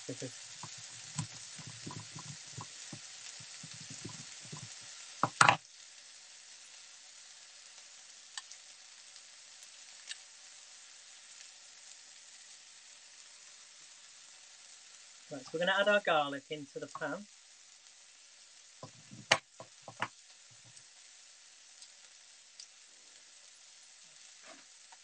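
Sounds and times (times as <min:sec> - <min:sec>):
food sizzling in a frying pan: 0:00.0 - 0:25.0
knife tapping on chopping board: 0:05.2 - 0:05.6, 0:18.8 - 0:20.1.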